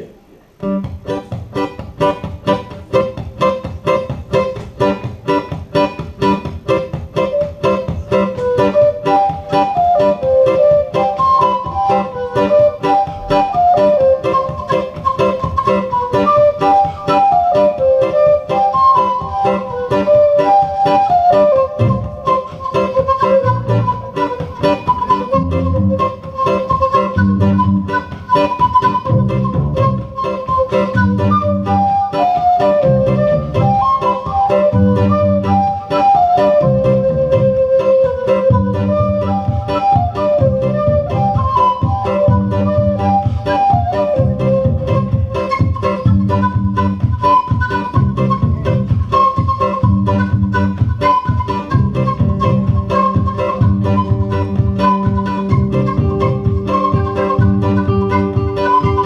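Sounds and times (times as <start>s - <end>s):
acoustic guitar strumming: 0.0s - 59.0s
whistle playing folk melody: 0.6s - 59.0s
deep bass notes: 25.3s - 26.1s, 48.0s - 49.0s, 51.7s - 56.6s.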